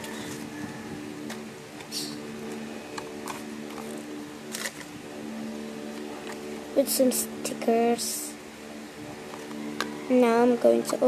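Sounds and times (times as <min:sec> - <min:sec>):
low background hum: 0:00.0 - 0:11.0
sticky tape peeling crackles: 0:01.2 - 0:05.0.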